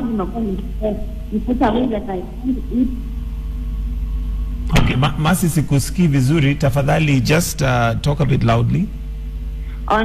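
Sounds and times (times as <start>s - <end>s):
low telephone line hum: 0.0s - 10.0s.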